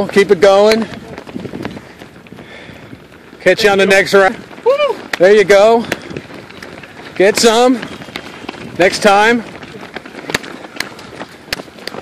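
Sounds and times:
running footsteps on concrete: 0:00.0 - 0:12.0.

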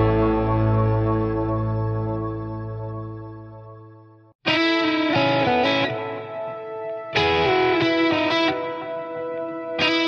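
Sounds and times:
sustained music chord: 0:00.0 - 0:04.2.

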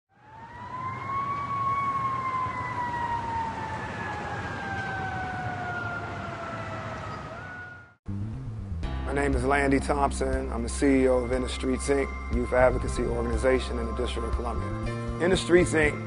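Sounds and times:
emergency vehicle siren wailing: 0:00.1 - 0:08.0
traffic rumble: 0:00.2 - 0:14.8.

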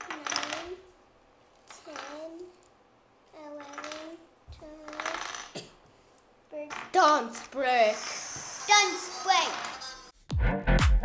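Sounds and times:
child's wordless vocal sounds: 0:06.6 - 0:09.7.

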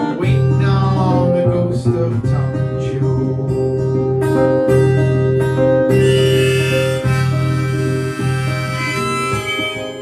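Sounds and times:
acoustic guitar: 0:00.0 - 0:10.0
harmonica long held notes: 0:05.8 - 0:10.0.

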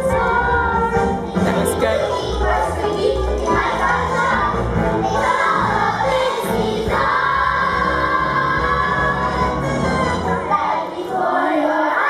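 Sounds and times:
young choir singing: 0:00.0 - 0:12.0.

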